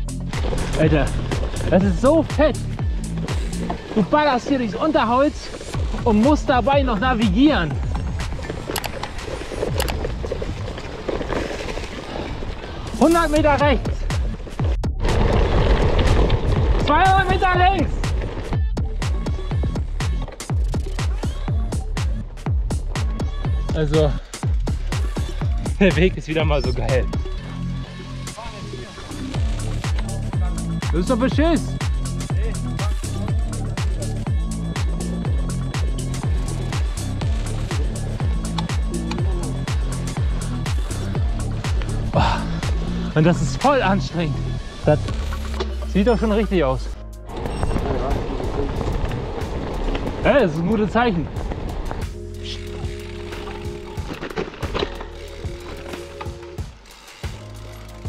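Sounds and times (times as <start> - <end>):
bike rattling over bumps: 0.0 - 18.8, 22.6 - 58.0
bike tyres rumbling on trail: 0.0 - 21.9, 32.3 - 58.0
kick drum: 16.6 - 23.9
electronic music: 18.6 - 48.3, 52.0 - 58.0.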